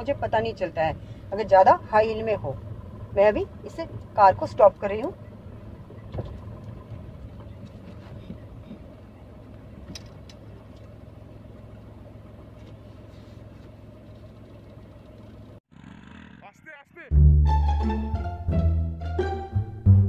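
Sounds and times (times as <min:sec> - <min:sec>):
car engine idling: 0:00.0 - 0:15.6.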